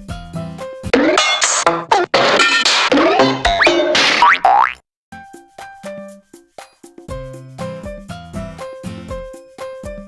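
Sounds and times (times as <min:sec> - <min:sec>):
cartoon boing effects: 0:01.0 - 0:04.8.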